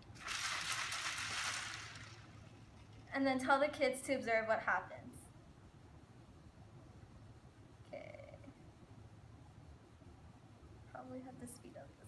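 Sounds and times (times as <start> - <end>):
liquid and beads sloshing in bottle: 0.0 - 3.1.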